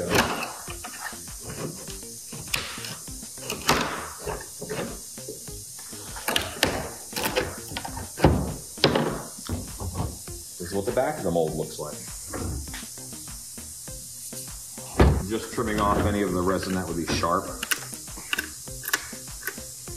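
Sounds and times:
knocks and scrapes on wooden bench: 0.1s - 5.4s, 6.0s - 10.3s, 15.0s - 17.4s
loud thump: 15.0s - 16.3s.

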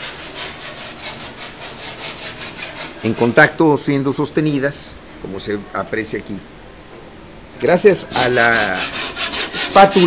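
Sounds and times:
rhythmic scraping strokes: 0.0s - 3.6s, 8.0s - 10.0s.

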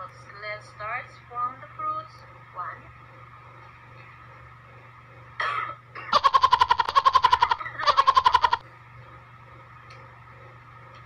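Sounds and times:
woman choking and coughing: 5.4s - 6.2s.

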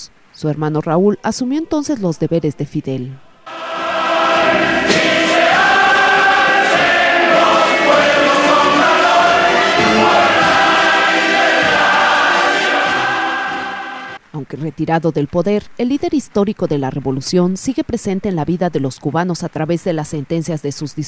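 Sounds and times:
many voices singing in chorus: 3.3s - 14.2s.

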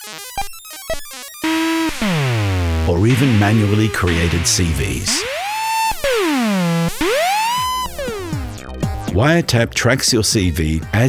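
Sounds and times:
buzzy synthesizer gliding pitch: 1.4s - 8.6s.

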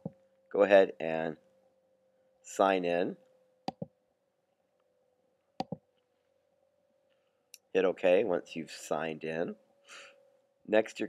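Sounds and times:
computer mouse button clicks: 5.6s - 5.8s.

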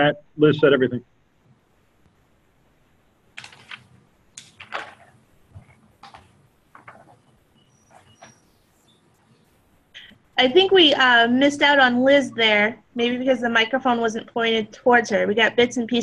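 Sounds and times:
faint clicks and knocks: 3.4s - 10.3s.

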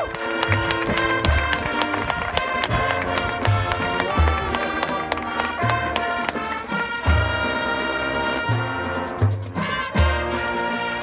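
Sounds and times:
marching band playing: 0.0s - 11.0s.

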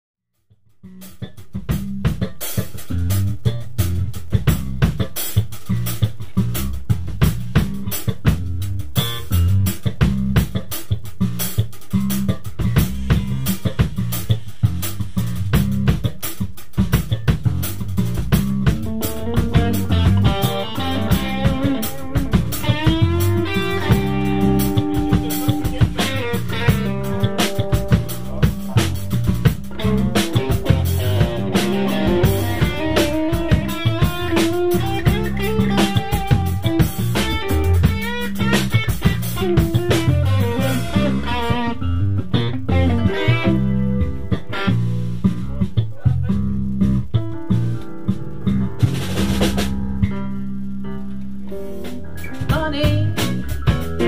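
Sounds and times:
lead melody with bending notes: 0.8s - 54.0s
live band instrumental groove: 0.8s - 54.0s.

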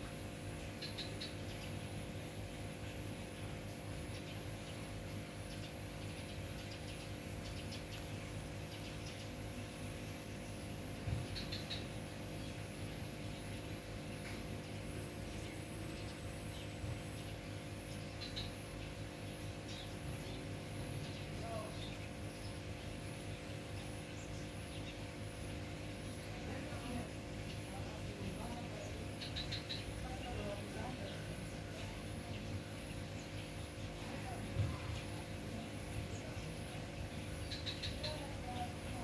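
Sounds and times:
outdoor background hum: 0.0s - 39.0s
high bird chirps: 11.2s - 12.6s, 28.8s - 30.3s, 37.2s - 38.8s.

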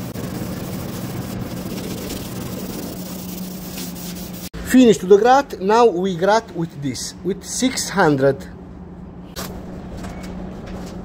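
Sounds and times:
hand sanding: 0.0s - 4.5s
steady mechanical hum: 0.0s - 11.0s.

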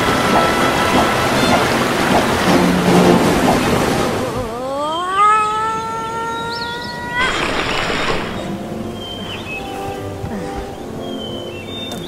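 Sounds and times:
boy crying out: 4.4s - 7.3s.

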